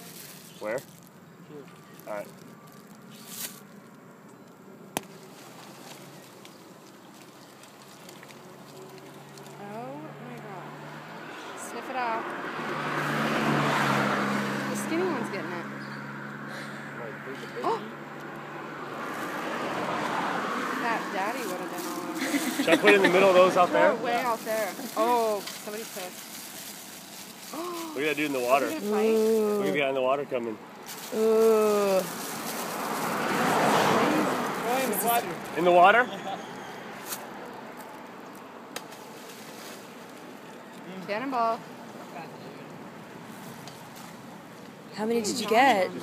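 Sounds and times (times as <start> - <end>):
outdoor background noise: 0.0 - 46.0
road vehicle passing: 0.0 - 46.0.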